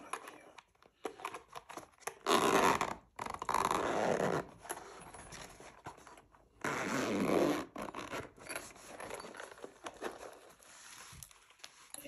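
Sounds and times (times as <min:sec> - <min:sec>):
zip and case scratching: 0:01.3 - 0:11.2
zipper pulled open: 0:02.2 - 0:05.0, 0:06.6 - 0:09.2.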